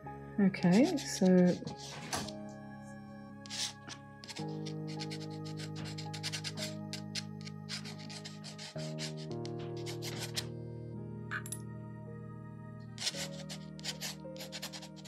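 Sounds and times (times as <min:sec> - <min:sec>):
soft background music chords: 0:00.0 - 0:15.0
pen scratching on paper: 0:00.6 - 0:02.4, 0:03.4 - 0:10.5, 0:13.0 - 0:15.0.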